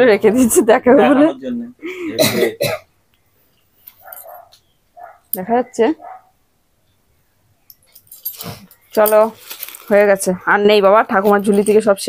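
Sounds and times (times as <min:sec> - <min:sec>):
woman talking: 0:00.0 - 0:01.4, 0:05.4 - 0:06.1, 0:09.0 - 0:12.0
throat-clearing cough: 0:02.0 - 0:02.9.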